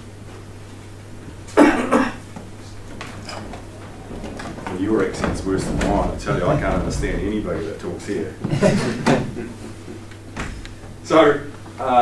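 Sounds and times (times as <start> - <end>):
steady low hum: 0.0 - 12.0
person coughing: 1.5 - 2.2.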